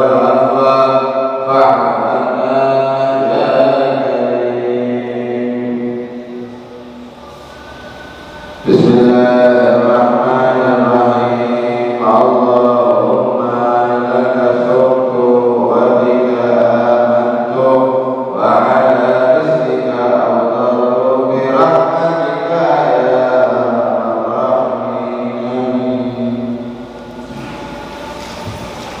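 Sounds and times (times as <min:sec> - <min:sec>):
man chanting melodically: 0:00.0 - 0:29.0.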